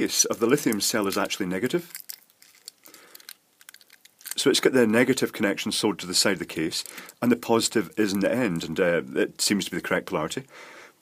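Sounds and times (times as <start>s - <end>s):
sticky tape crinkling: 0.3s - 4.5s, 6.2s - 8.7s.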